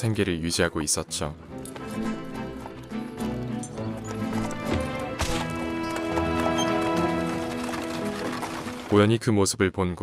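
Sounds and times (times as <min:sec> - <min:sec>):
film score music: 0:00.0 - 0:09.3
horse hooves clip-clopping: 0:01.5 - 0:09.0.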